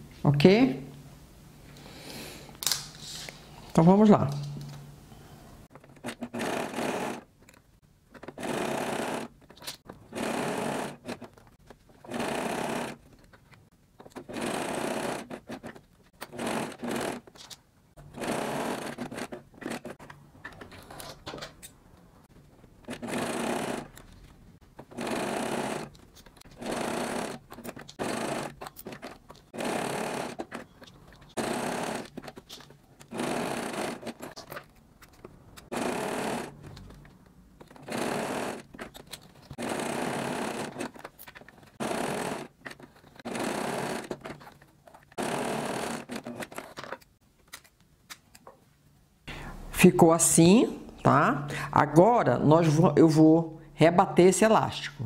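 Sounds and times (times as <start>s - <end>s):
sewing machine stitching: 5.8s - 7.3s, 8.2s - 11.4s, 12.0s - 13.1s, 14.1s - 17.3s, 18.0s - 21.1s, 22.8s - 24.1s, 24.8s - 34.5s, 35.6s - 37.0s, 37.7s - 46.9s.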